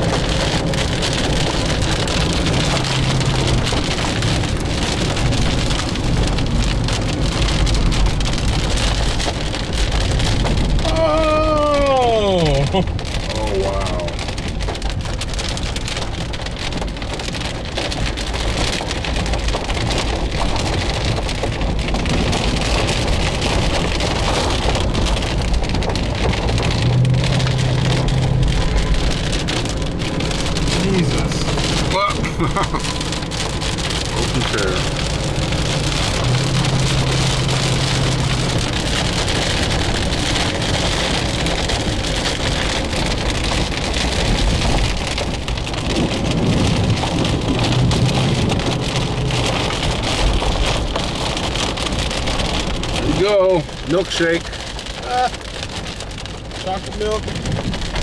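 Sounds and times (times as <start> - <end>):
heavy rain on car roof: 0.0 - 58.0.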